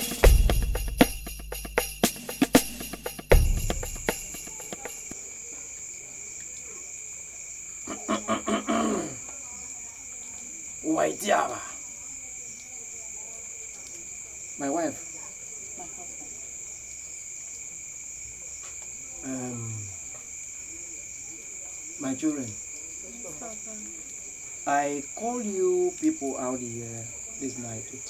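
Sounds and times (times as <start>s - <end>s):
crickets chirping: 0.0s - 28.0s.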